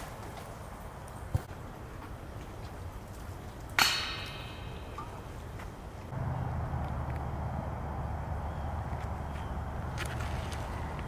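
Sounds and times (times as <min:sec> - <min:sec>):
disc striking metal basket: 0:03.7 - 0:05.6
steady low rumble: 0:04.1 - 0:11.0.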